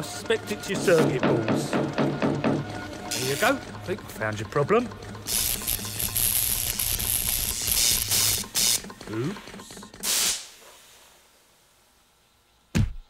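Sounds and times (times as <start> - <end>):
low electric buzz: 2.8 - 9.3.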